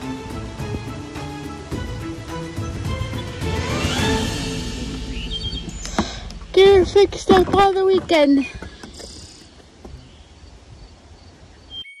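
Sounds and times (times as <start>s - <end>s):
low wind rumble on microphone: 4.7s - 9.0s.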